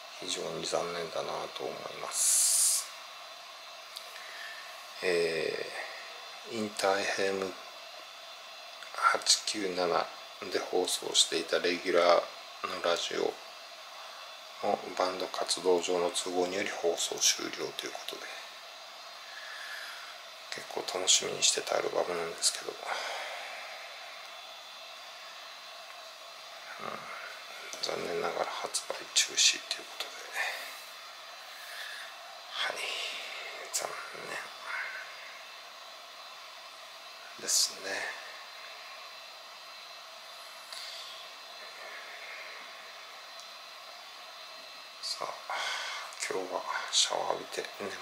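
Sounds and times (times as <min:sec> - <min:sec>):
room noise hiss: 0:00.0 - 0:48.0.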